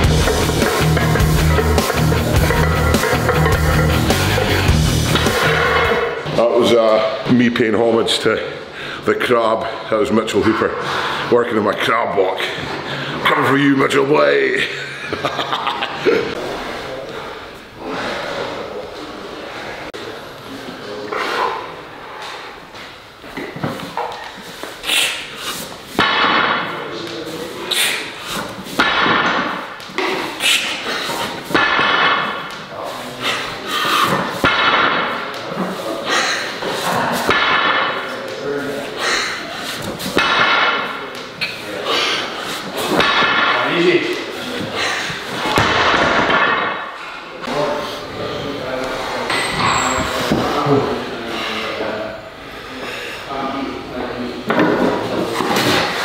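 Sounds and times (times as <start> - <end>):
weight plates ringing: 0.1 - 6.2
barbell plates thudding on floor: 0.2 - 4.5, 26.0 - 26.8, 28.7 - 30.2, 31.5 - 32.5, 34.1 - 35.2, 45.4 - 46.9.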